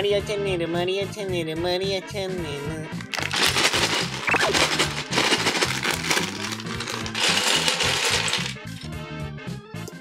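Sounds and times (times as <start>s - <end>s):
plastic bag crinkling: 3.0s - 8.8s
plastic bricks clattering: 3.0s - 8.9s.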